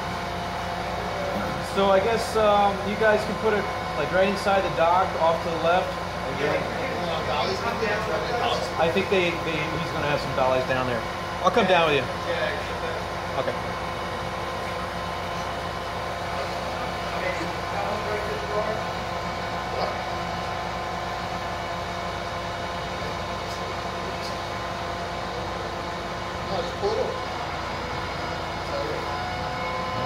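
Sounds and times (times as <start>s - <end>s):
crane engine droning: 0.0s - 30.0s.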